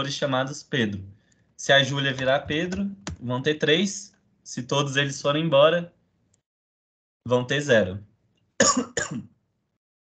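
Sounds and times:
person clearing throat: 8.6 - 9.4.

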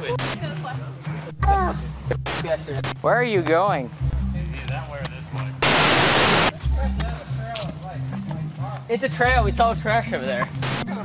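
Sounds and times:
loud static hiss: 0.0 - 0.4, 2.1 - 3.2, 5.6 - 6.6, 10.6 - 11.0
background music with pulsing bass: 0.0 - 11.0.

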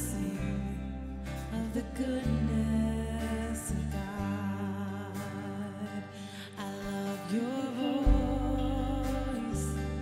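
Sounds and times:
acoustic guitar: 0.0 - 10.0
person singing melody: 0.0 - 10.0
worship band playing slow song: 0.0 - 10.0.

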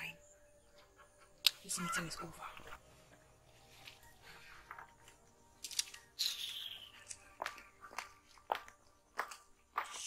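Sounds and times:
footsteps walking away: 6.6 - 10.0.

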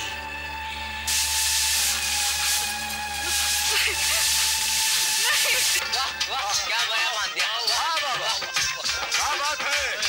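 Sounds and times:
loud even hiss: 1.1 - 5.8.

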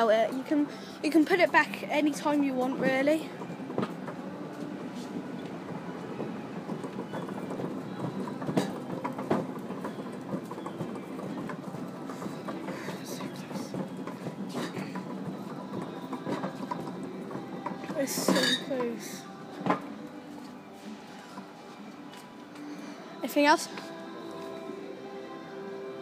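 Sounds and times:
steady store din: 0.0 - 26.0.

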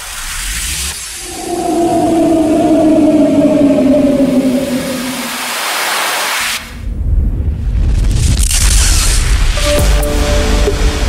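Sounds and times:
rushing whoosh: 1.0 - 6.8.

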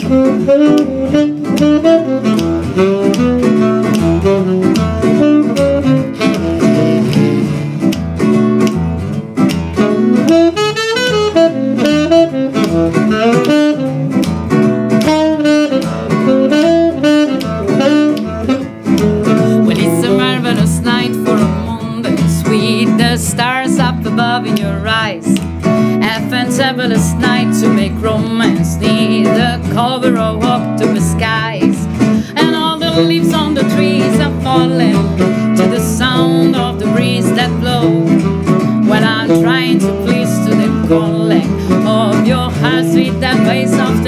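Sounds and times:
acoustic guitar strumming chords: 0.0 - 44.0
saxophone melody: 0.0 - 44.0.

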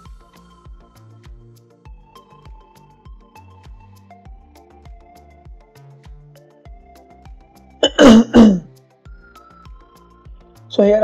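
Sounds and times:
quiet background music: 0.0 - 11.0
person clearing throat: 7.8 - 8.7.

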